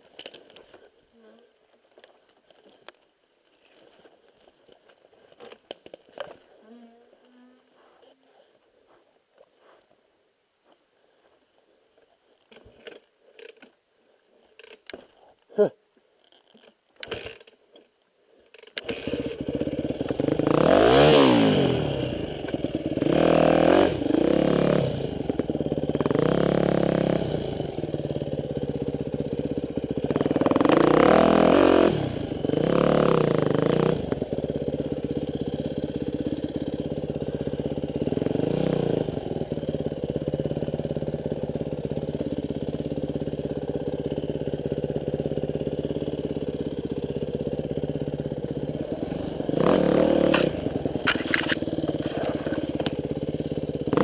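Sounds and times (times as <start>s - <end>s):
dirt bike engine revving: 18.8s - 54.0s.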